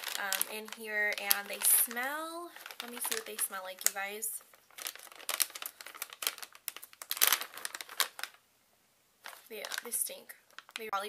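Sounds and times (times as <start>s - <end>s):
plastic pouch crinkling: 0.0s - 8.4s, 9.2s - 11.0s.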